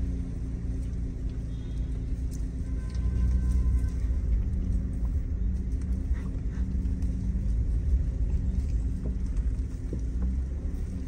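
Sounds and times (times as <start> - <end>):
car engine hum: 0.0 - 11.0
road noise: 0.0 - 11.0.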